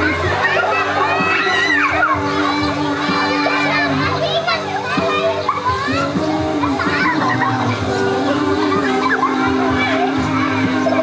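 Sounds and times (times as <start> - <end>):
children shouting: 0.0 - 11.0
music with held notes: 0.0 - 11.0.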